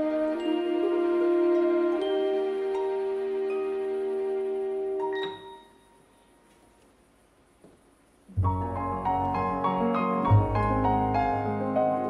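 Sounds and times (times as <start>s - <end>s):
orchestra holding soft chord: 8.3s - 12.0s.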